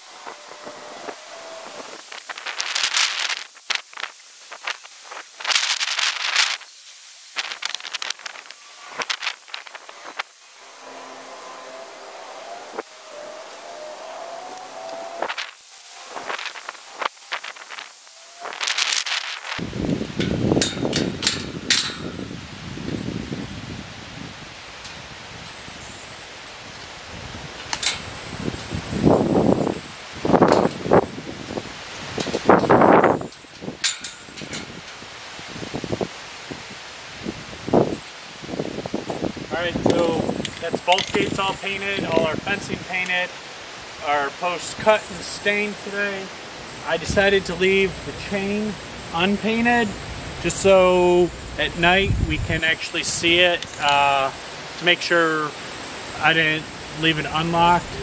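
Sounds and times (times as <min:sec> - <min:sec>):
wind noise on microphone: 0:00.0 - 0:11.1, 0:11.7 - 0:46.1, 0:46.7 - 0:58.0.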